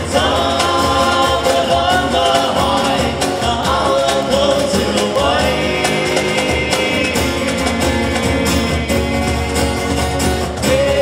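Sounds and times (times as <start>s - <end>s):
cajon beat: 0.0s - 11.0s
men singing in harmony: 0.0s - 11.0s
strummed acoustic guitars: 0.0s - 11.0s.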